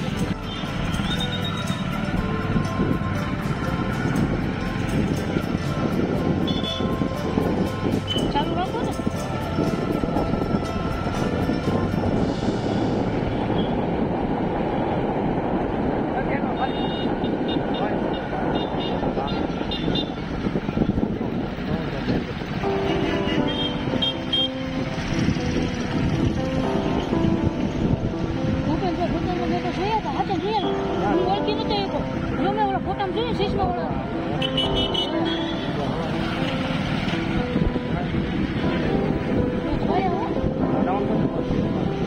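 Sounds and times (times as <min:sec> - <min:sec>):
music: 0:00.0 - 0:15.1, 0:18.5 - 0:42.0
traffic: 0:00.0 - 0:42.0
vehicle driving rumble: 0:00.0 - 0:42.0.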